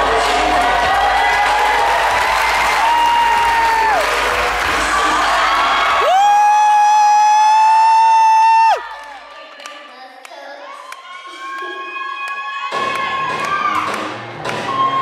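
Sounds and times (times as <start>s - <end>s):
dance music: 0.0s - 9.0s, 11.4s - 15.0s
audience cheering and whooping: 0.0s - 9.2s, 10.7s - 15.0s.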